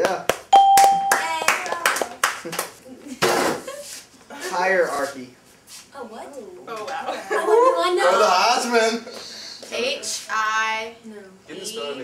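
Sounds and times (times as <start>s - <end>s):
people clapping: 0.0s - 2.8s
electronic chime: 0.6s - 1.4s
people laughing: 7.1s - 8.0s.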